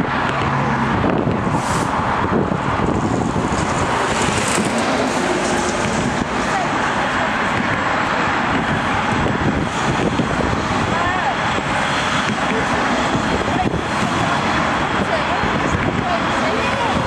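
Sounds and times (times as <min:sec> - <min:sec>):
diesel locomotive engine droning: 0:00.0 - 0:17.0.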